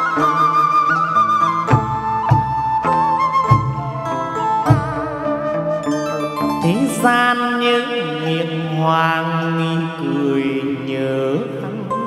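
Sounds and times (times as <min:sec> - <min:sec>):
slow background music: 0:00.0 - 0:12.0
chanted voice holding notes: 0:06.5 - 0:12.0.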